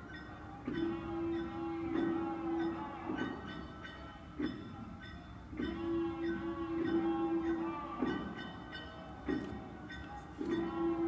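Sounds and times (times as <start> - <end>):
drum strikes: 0.6 - 11.0.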